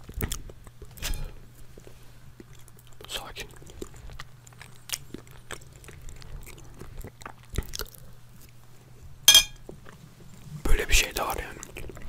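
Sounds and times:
mouth chewing soft cake: 0.0s - 12.0s.

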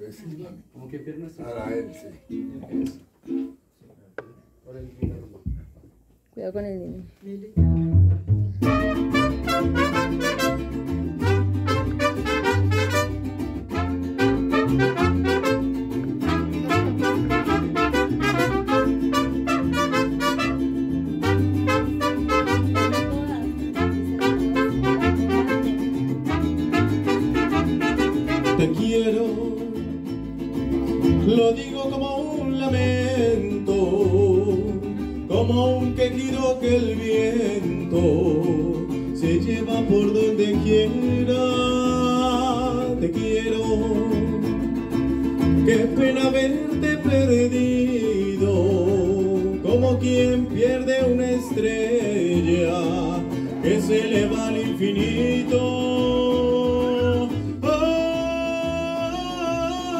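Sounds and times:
plucked bass line: 7.6s - 59.9s
strummed guitars: 7.6s - 59.9s
man singing into a microphone: 28.3s - 30.0s, 31.2s - 44.7s, 45.5s - 59.9s.

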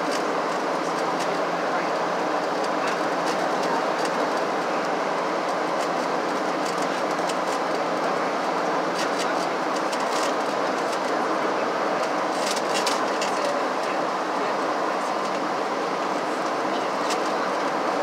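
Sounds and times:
jet engines humming: 0.0s - 18.0s.

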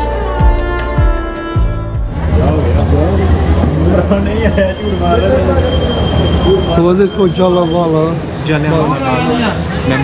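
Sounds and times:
background music with heavy bass: 0.0s - 2.6s
voices: 2.3s - 10.0s.

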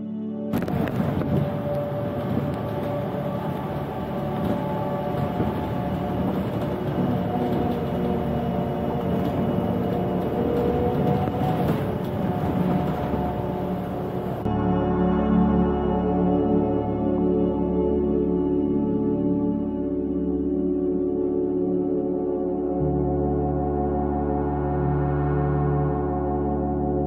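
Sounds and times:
ambient music: 0.0s - 27.0s
bus engine and road noise: 0.5s - 14.5s.

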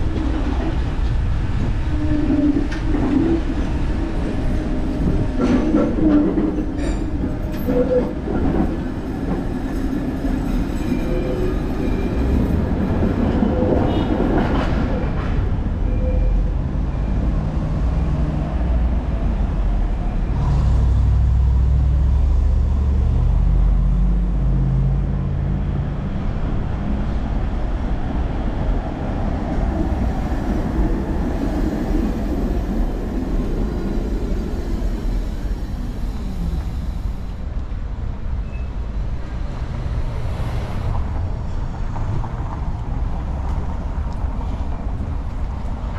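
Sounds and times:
tram wheels clicking over rail joints: 0.0s - 15.8s
street noise: 0.0s - 45.9s
tram motors whining: 29.1s - 37.7s.

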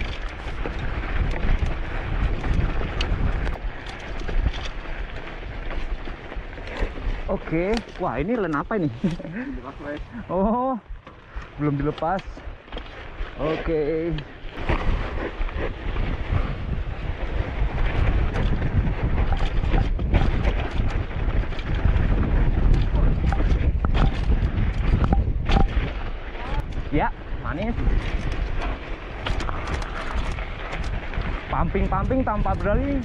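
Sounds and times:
bike knocking and rattling: 0.0s - 33.0s
bike tyres rumbling on dirt: 0.0s - 33.0s
wind on microphone: 0.0s - 33.0s.

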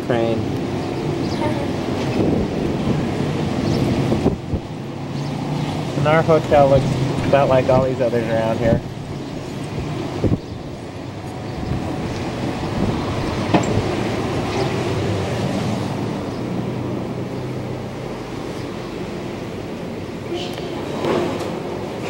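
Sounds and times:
city street traffic rumble: 0.0s - 22.0s.

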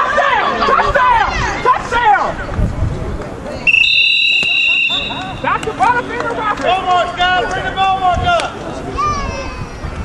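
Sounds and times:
people shouting: 0.0s - 2.3s
sports whistle blast: 3.7s - 5.6s.

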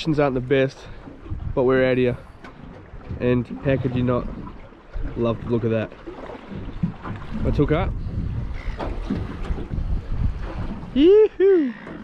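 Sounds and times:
wind buffeting microphone: 0.0s - 5.7s, 6.3s - 11.4s
waves washing around boat: 0.0s - 12.0s.

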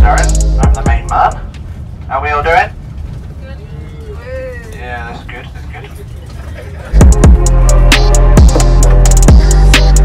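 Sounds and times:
bus engine rumble: 0.0s - 10.0s
quiet voices: 3.3s - 7.0s.

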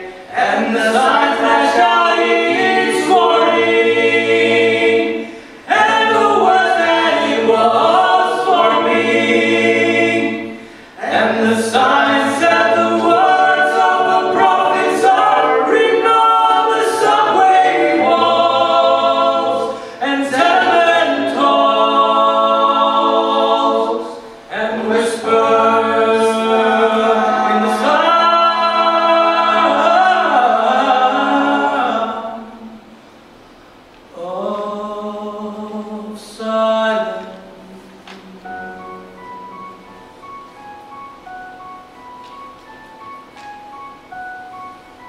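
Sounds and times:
mixed choir singing a cappella: 0.0s - 33.0s, 34.1s - 40.0s.

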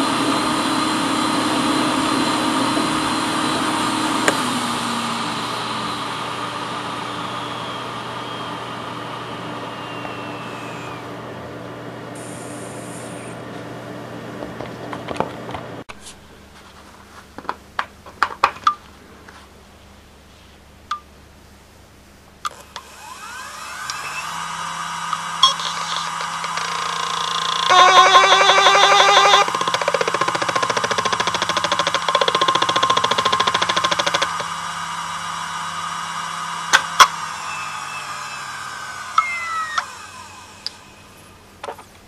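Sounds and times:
hard drive whine: 0.0s - 16.5s, 18.9s - 42.0s.

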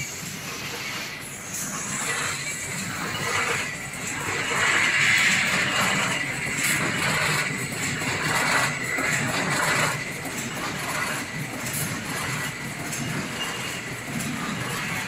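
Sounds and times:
machine clatter of belts and rollers: 0.0s - 15.0s.

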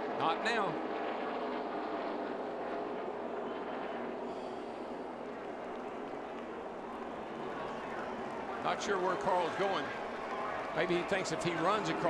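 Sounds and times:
race car engines droning: 2.4s - 12.0s.

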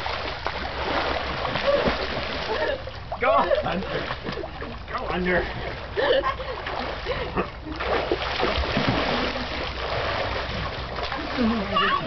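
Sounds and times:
water splashing in a pool: 0.0s - 12.0s.

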